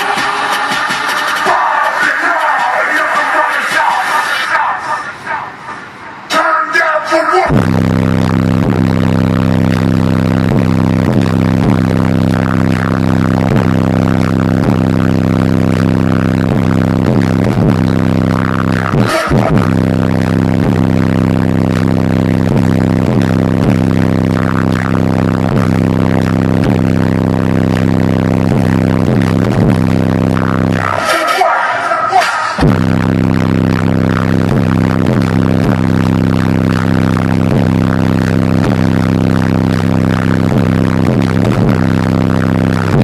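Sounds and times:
loud low bass tone: 0:07.5 - 0:31.1, 0:32.6 - 0:43.0.

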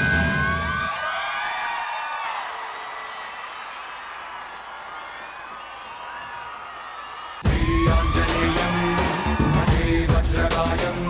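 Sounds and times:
shouts and whoops: 0:00.0 - 0:09.8
audience applause and cheering: 0:00.0 - 0:10.4.

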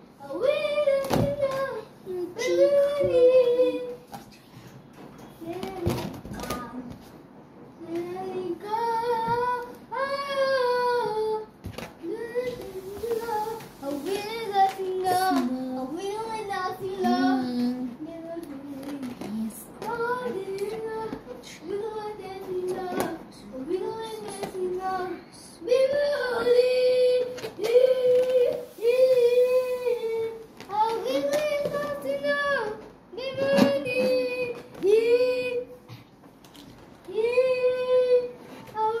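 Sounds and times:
child singing: 0:00.2 - 0:04.1, 0:05.4 - 0:07.0, 0:07.8 - 0:35.8, 0:37.0 - 0:39.0.

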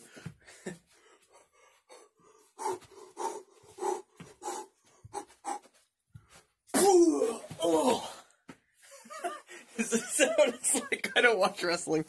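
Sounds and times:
man panting hard: 0:00.0 - 0:05.9.

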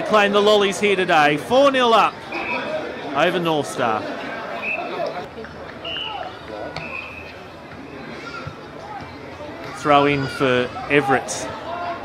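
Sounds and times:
distant shouts and chatter: 0:00.0 - 0:12.0.

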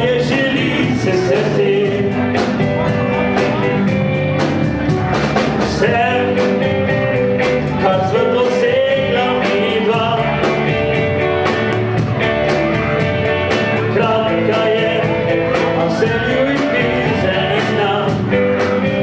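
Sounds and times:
person singing: 0:00.0 - 0:04.0, 0:05.6 - 0:11.8, 0:12.4 - 0:19.0
live band playing pop-folk: 0:00.0 - 0:19.0.

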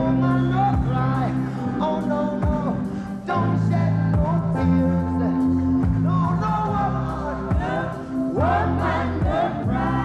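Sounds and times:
man singing: 0:00.0 - 0:10.0
reggae band playing: 0:00.0 - 0:10.0
steady bass line: 0:00.0 - 0:10.0.

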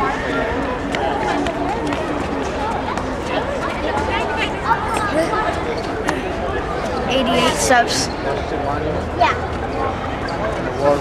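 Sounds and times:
people talking outdoors: 0:00.0 - 0:11.0.

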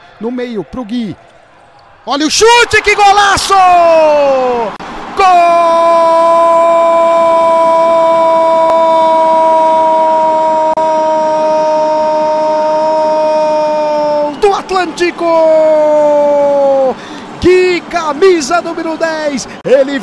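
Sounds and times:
commentator shouting goal cry: 0:02.1 - 0:16.9.

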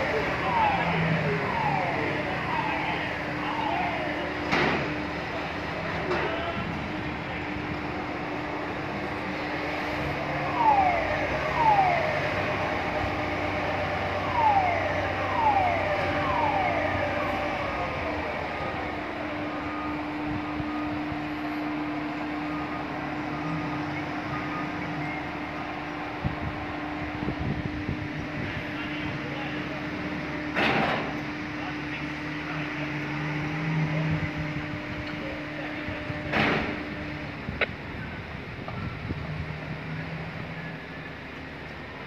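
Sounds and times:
crane machinery hum: 0:00.0 - 0:42.0.

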